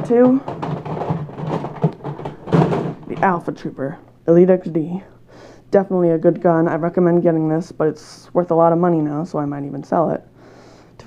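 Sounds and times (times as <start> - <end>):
plastic toy blasters clattering: 0.0 - 3.5
rustling handling noise: 0.0 - 3.9.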